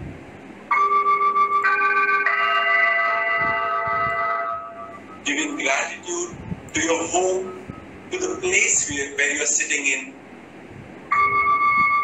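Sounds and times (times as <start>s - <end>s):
soft keyboard chords: 0.7s - 9.3s.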